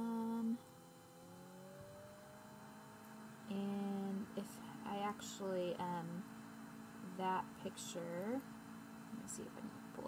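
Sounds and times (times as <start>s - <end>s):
faint rising tone: 0.0s - 3.8s.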